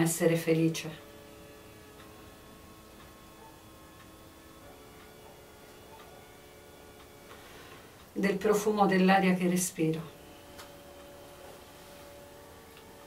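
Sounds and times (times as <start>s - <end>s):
faint ticking: 0.0s - 11.2s
faint steady tones: 0.0s - 13.0s.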